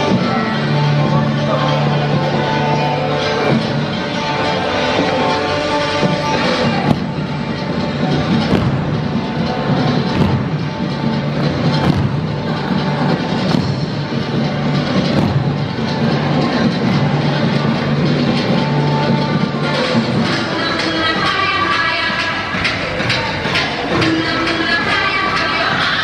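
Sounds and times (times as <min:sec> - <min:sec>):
loud recorded music: 0:00.0 - 0:26.0.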